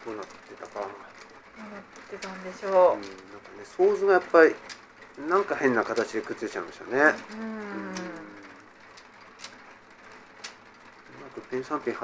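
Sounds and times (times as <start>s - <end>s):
mahjong tile set on table: 0.0s - 12.0s
person speaking: 5.2s - 8.6s.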